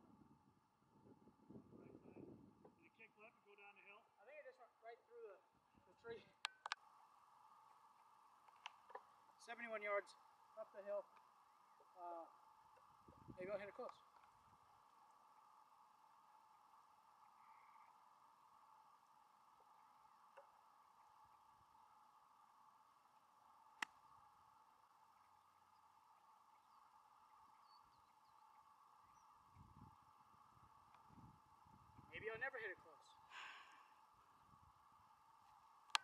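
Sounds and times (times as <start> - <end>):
faint steady hum: 0.0 - 36.0.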